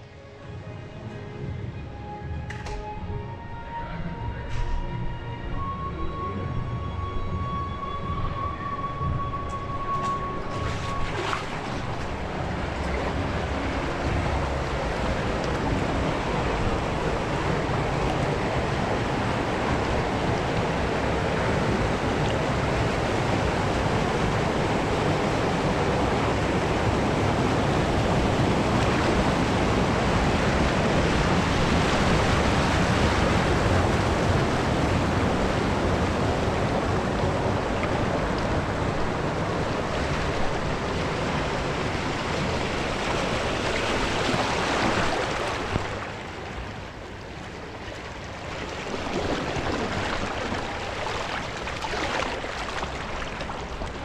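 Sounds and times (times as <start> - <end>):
rushing and splashing water: 7.3 - 54.0.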